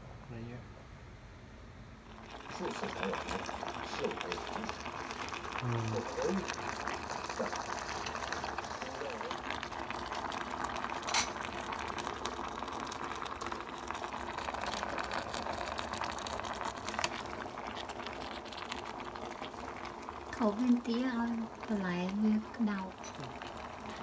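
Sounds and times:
broth bubbling at a boil: 2.0 - 24.0.

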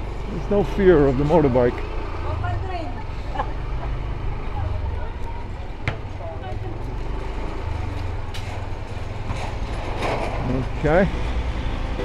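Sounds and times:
people's voices: 0.3 - 7.2.

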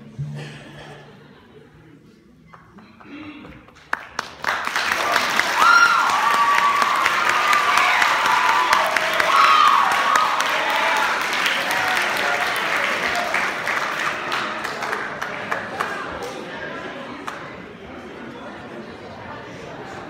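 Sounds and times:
audience applauding and cheering: 3.7 - 16.4
audience whoops: 5.0 - 13.4.

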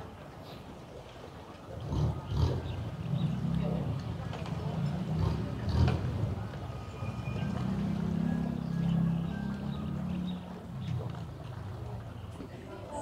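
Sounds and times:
boat engine drone: 0.0 - 13.0.

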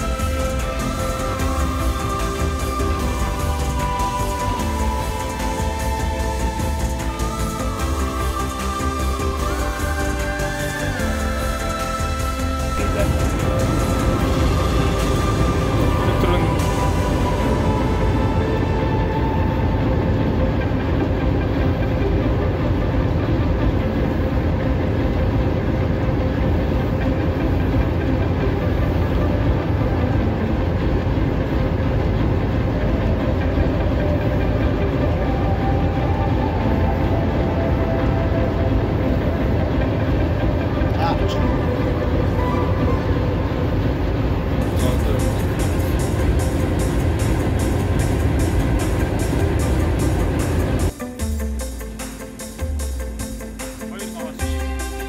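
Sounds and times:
locomotive engine rumbling: 0.0 - 55.0.

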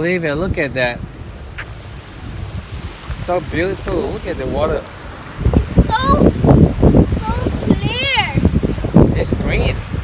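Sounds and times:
wind and sea rushing: 0.0 - 10.0
wind buffeting microphone: 0.0 - 10.0.

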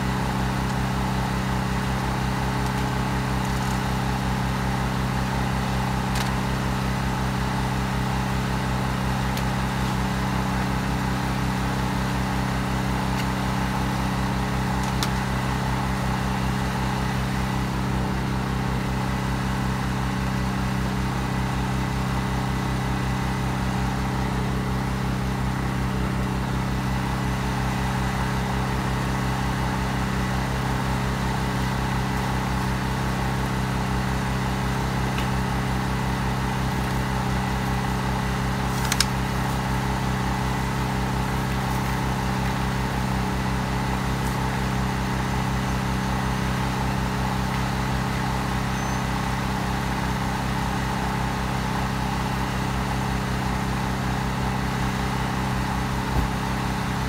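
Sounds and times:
engine idling: 0.0 - 57.0.

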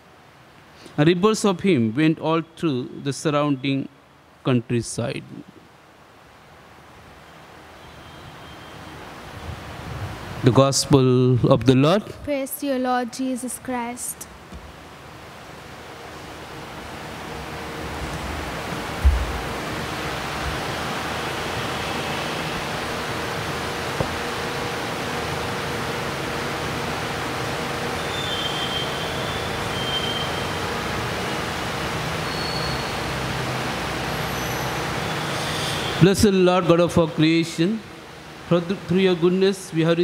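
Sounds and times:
steady background noise: 0.0 - 40.0
low thump: 19.0 - 19.5.

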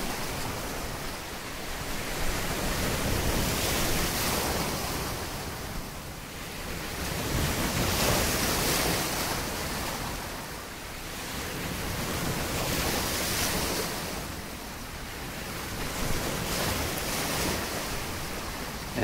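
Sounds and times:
ocean waves washing: 0.0 - 19.0.

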